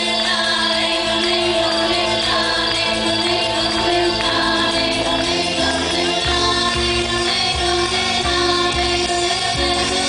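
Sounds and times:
low bass line: 0.0 - 10.0
woman singing into microphone: 0.0 - 10.0.

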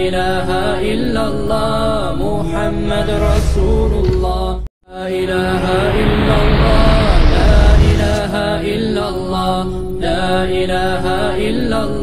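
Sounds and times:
melodic vocal chanting: 0.0 - 12.0.

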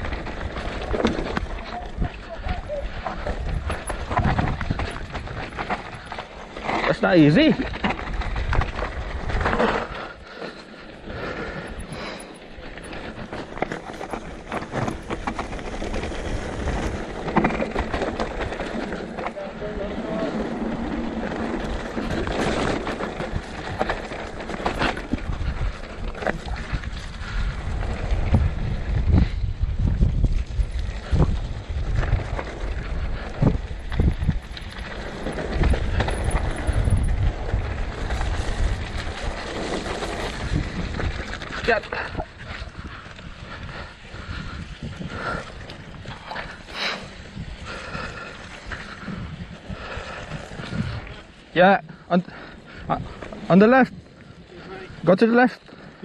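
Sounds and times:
bike knocks and rattles: 0.0 - 10.0, 11.7 - 43.0
bike tyres crunching over rock: 0.0 - 51.6
wind buffeting microphone: 0.0 - 56.0.

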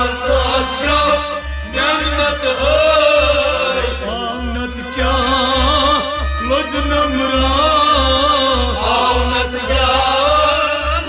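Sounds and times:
instrumental accompaniment with low beat: 0.0 - 11.0
man singing: 0.0 - 11.0.

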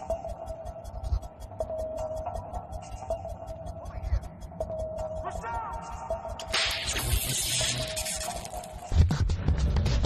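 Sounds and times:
low music drone: 0.0 - 8.9
electrical sparks crackling: 6.5 - 9.0.

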